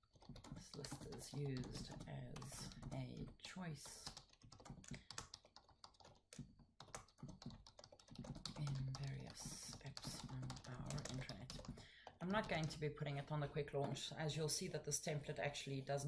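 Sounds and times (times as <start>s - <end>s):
keyboard typing: 0.0s - 14.2s.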